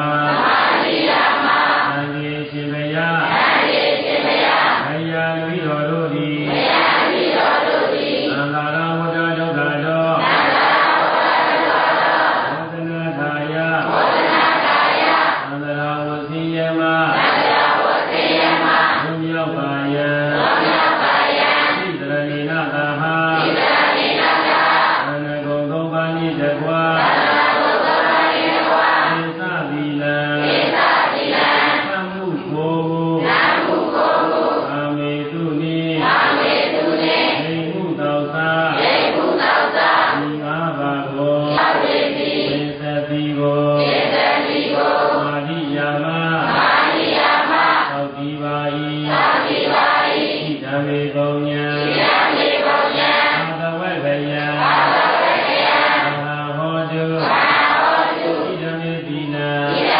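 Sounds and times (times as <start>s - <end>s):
man chanting melodically: 0.0s - 0.8s, 1.4s - 4.2s, 4.8s - 59.9s.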